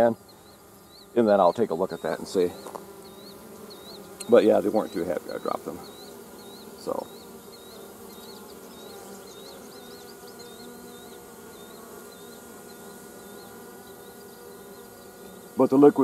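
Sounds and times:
honeybees buzzing: 0.0 - 16.0.

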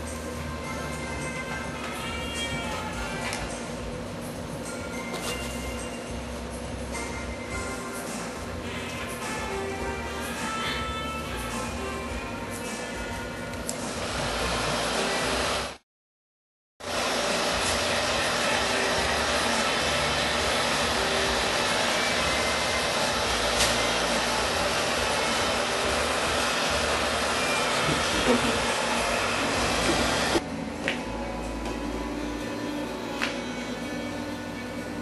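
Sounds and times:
hair dryer blowing: 13.7 - 15.8, 16.8 - 30.4.

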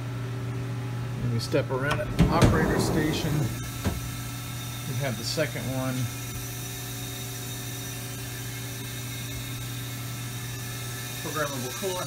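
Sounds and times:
idle machine hum with tones: 0.0 - 12.0.

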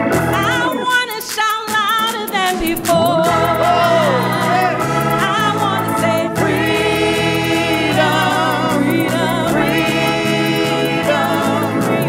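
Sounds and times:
low instrumental backing: 2.6 - 6.6
group singing in harmony: 2.6 - 12.0.

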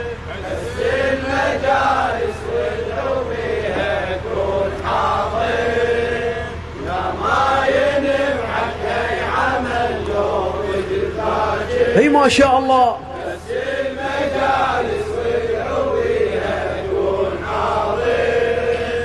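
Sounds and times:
men chanting in unison: 0.0 - 19.0.

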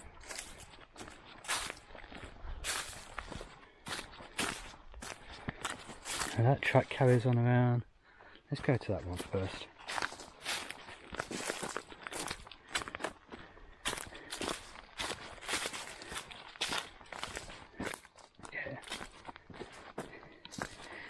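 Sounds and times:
footsteps crunching on dry leaves: 0.0 - 7.4, 8.6 - 21.0.

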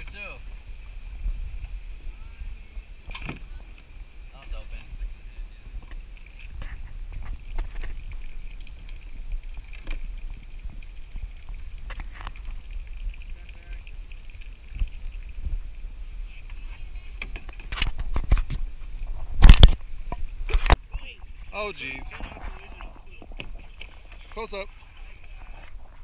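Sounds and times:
wind and water rumble: 0.0 - 26.0.

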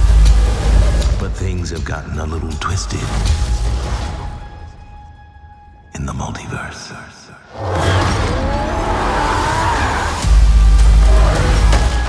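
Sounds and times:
trailer music: 0.0 - 12.0
tyres screeching: 7.5 - 12.0.

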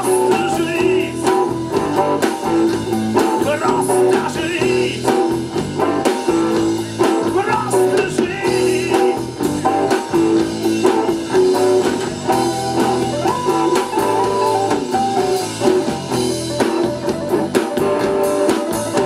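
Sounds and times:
bass guitar: 0.0 - 19.0
drum kit beat: 0.0 - 19.0
electric guitar: 0.0 - 19.0
keyboard: 0.0 - 19.0.

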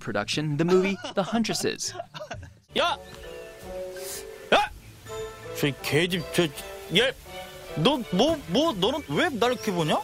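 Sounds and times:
film score with sustained notes: 1.9 - 10.0.

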